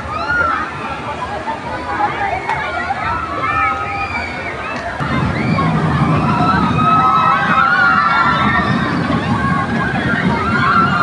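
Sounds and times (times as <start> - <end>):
crowd voices and shrieks: 0.0 - 11.0
roller coaster rumbling on track: 0.0 - 11.0.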